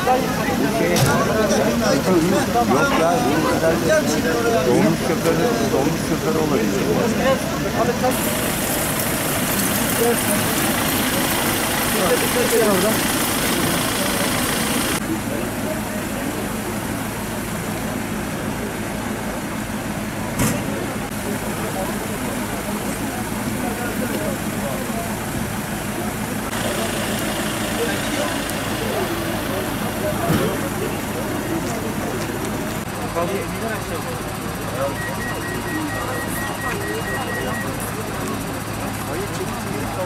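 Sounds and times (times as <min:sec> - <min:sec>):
people's voices: 0:00.0 - 0:40.0
vehicle engine idling: 0:00.0 - 0:40.0.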